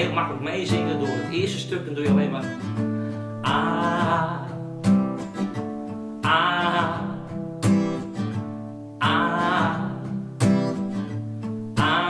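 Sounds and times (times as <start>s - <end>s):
acoustic guitar chord ringing: 0.0s - 12.0s.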